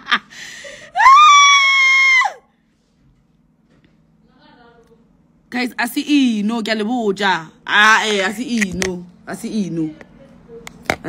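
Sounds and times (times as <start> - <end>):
woman's high-pitched squeal: 0.9 - 2.5.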